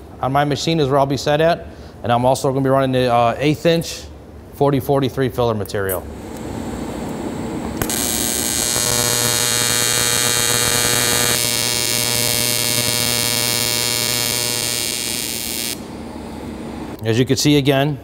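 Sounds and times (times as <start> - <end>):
welding arc buzzing: 6.0 - 17.0.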